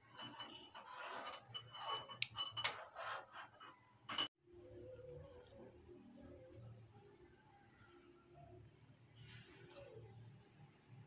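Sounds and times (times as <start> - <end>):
utensils clinking against dishes: 0.0 - 4.3.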